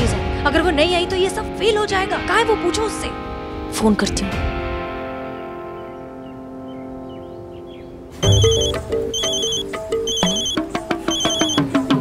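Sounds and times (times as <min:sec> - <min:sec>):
musical phone ringtone: 0:08.2 - 0:11.7
trilling phone ring: 0:08.2 - 0:11.7.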